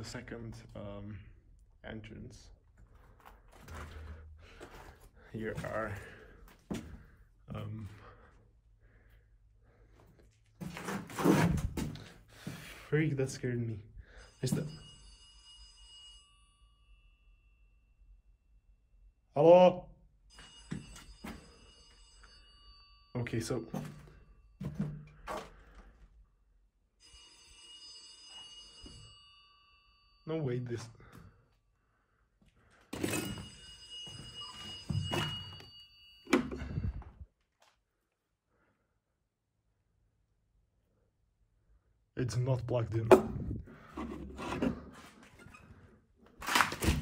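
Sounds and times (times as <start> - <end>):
telephone bell ringing: 14.0 - 17.9, 20.3 - 24.7, 27.0 - 30.4, 33.0 - 37.2.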